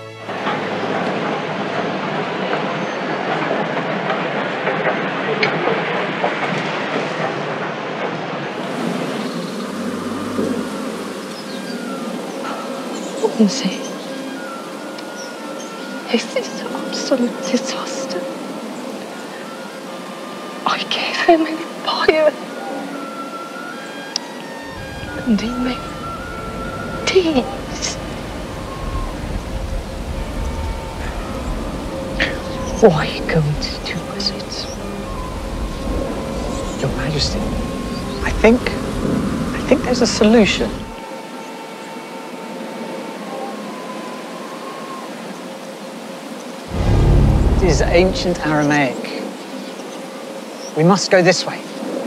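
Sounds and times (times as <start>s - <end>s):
mechanical rumble: 46.7s - 48.7s.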